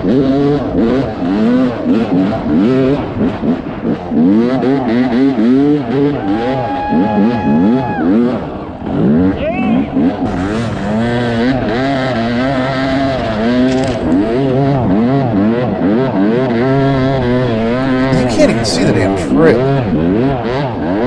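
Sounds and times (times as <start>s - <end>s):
dirt bike engine revving: 10.0s - 18.1s.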